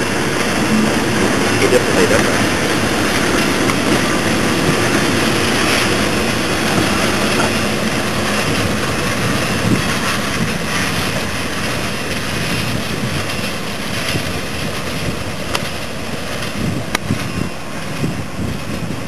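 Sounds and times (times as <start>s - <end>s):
freight train rumbling past: 0.0s - 19.0s
wind on microphone: 0.0s - 19.0s.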